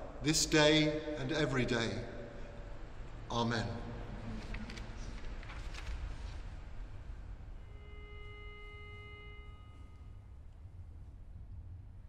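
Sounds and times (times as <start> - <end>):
low room rumble: 0.0 - 12.0
sustained pitched note: 7.6 - 10.5.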